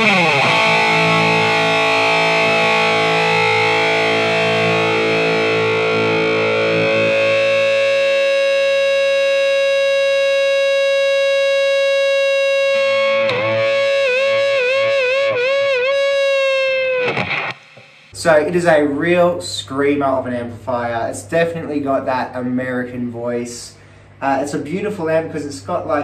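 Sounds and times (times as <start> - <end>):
distorted electric guitar: 0.0 - 18.2.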